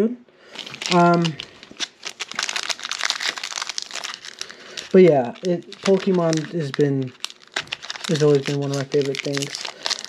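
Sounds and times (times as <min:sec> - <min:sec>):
foil wrapper crinkling: 0:00.5 - 0:10.0.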